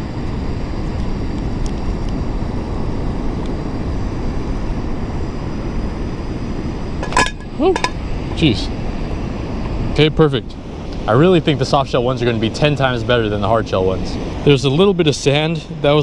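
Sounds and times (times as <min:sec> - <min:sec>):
beach wind: 0:00.0 - 0:16.0
person exclaiming: 0:07.5 - 0:07.9.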